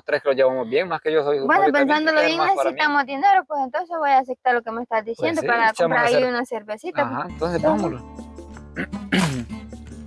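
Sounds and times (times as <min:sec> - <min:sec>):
background music with held tones: 0:07.0 - 0:10.0.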